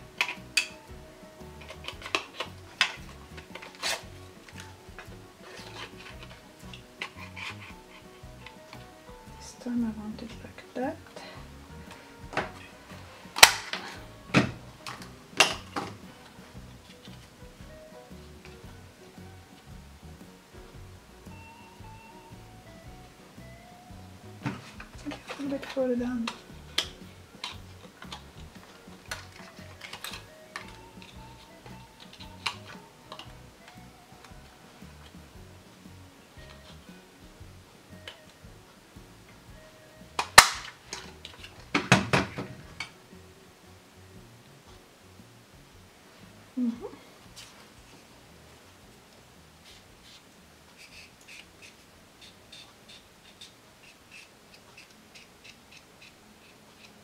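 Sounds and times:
faint background music: 0.0 - 57.0.

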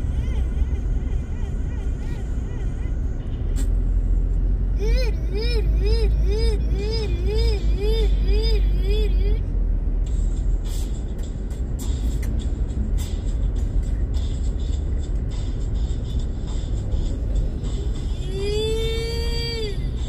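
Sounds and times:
car interior rumble: 0.0 - 20.0.

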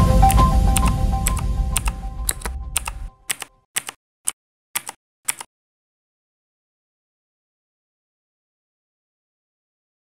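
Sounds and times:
music: 0.0 - 3.6
keyboard typing clicks: 0.2 - 4.0, 4.8 - 5.5.

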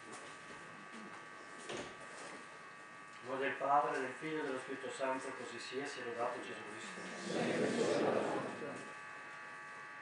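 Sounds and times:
steady electrical buzz: 0.0 - 10.0
murmur of many voices: 6.7 - 8.9.

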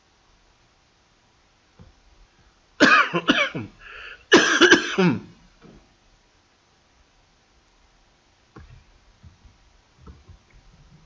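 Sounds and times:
person coughing: 2.8 - 5.4.

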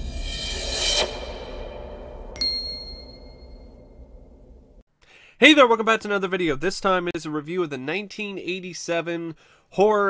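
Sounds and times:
whoosh: 0.0 - 2.4
low rumble: 0.0 - 4.8
bright ding: 2.4 - 4.0.

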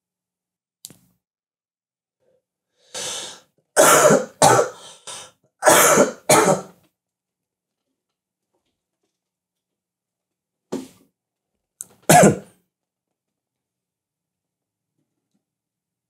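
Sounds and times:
man coughing: 3.8 - 4.8, 5.6 - 6.7, 12.1 - 12.5.

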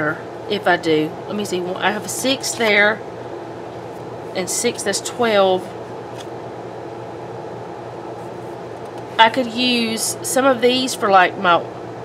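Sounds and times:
low room hum and hiss: 0.0 - 12.0.

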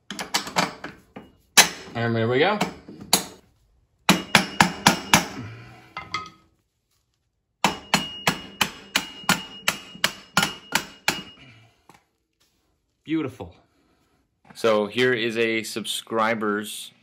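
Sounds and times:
hammer striking steel: 4.1 - 5.4, 7.6 - 11.4.

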